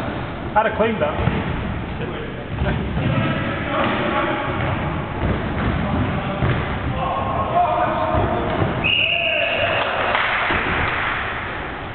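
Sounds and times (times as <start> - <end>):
football kicked and bouncing: 2.9 - 7.0.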